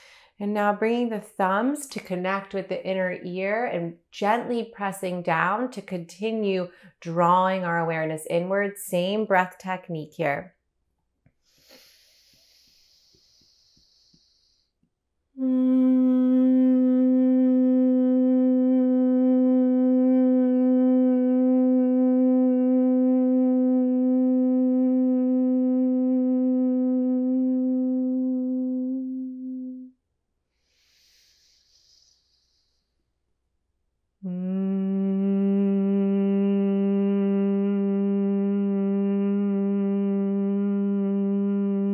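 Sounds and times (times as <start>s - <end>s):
woman inhaling through nose: 11.4s - 14.8s, 30.5s - 33.1s
long low humming: 15.4s - 29.9s, 34.2s - 41.9s.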